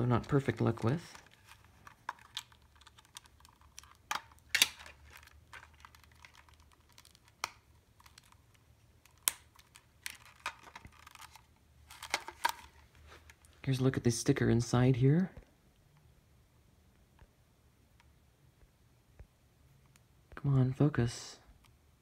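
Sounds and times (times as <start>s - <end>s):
plastic rustling: 0.0s - 13.6s.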